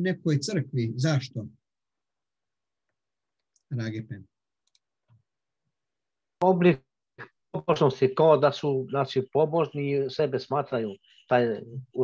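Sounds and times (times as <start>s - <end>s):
faint clicks: 4.6s - 5.2s.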